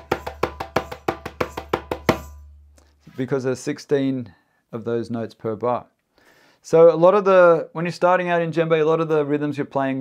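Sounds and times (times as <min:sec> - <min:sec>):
djembe bass strokes: 0:00.0 - 0:03.2.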